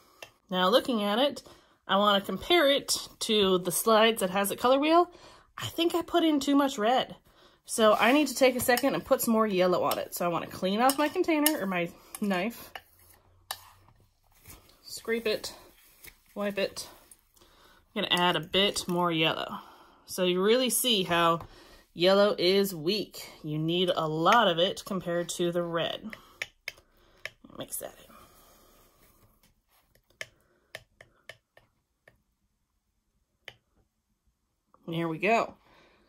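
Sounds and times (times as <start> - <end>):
knife scraping ceramic plate: 12.2 - 13.9.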